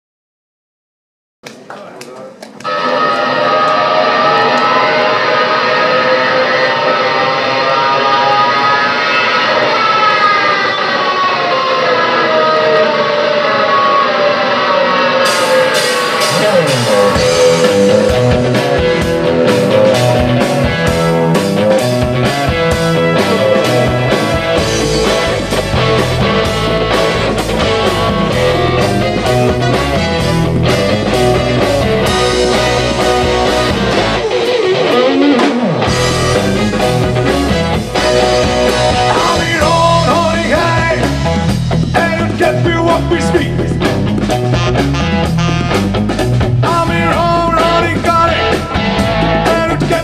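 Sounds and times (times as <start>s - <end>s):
held electric guitar notes: 2.4s - 50.0s
live rock band playing: 2.4s - 50.0s
drum kit and cymbals: 15.2s - 50.0s.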